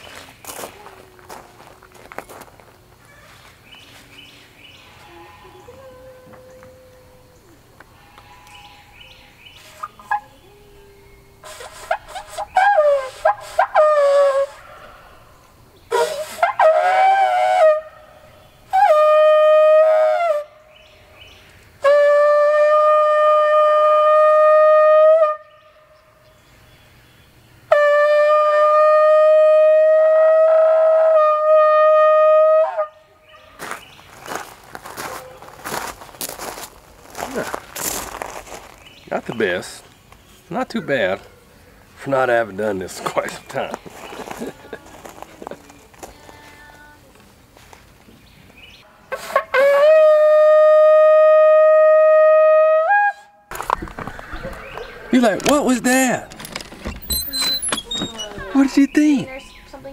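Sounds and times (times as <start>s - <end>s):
shofar blasts: 9.7s - 15.1s, 15.9s - 20.7s, 21.8s - 25.6s, 27.7s - 33.2s, 49.1s - 53.5s.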